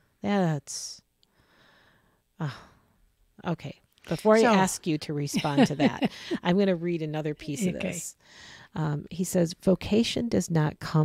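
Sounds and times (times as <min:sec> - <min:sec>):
person saying uh: 0:04.1 - 0:04.7, 0:05.3 - 0:06.5, 0:07.4 - 0:08.1.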